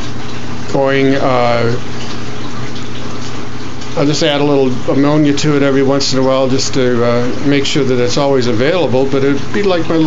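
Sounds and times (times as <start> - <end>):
water rushing: 0.0 - 10.0.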